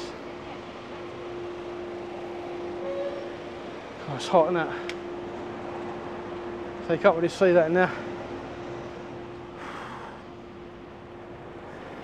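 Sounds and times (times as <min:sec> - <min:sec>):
city street noise: 0:00.0 - 0:12.0
steady mechanical hum: 0:00.0 - 0:12.0.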